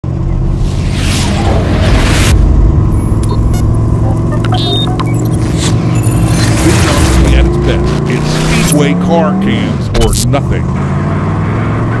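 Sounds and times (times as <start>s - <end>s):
race car engine running: 0.0s - 12.0s
whoosh: 0.2s - 4.1s
clicks and chirps: 4.3s - 6.6s.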